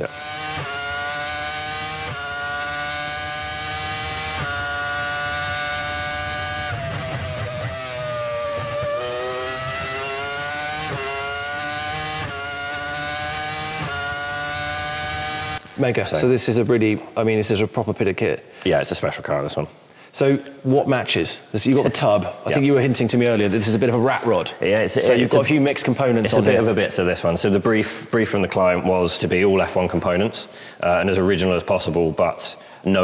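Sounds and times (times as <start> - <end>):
racing car engine at high revs: 0.0 - 15.7.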